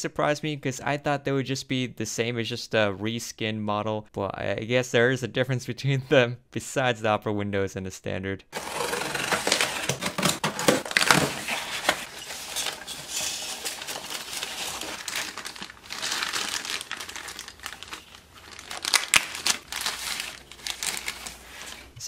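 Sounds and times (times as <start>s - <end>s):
box cutter slitting tape: 8.6s - 12.8s
plastic wrapping crinkling: 8.6s - 22.0s.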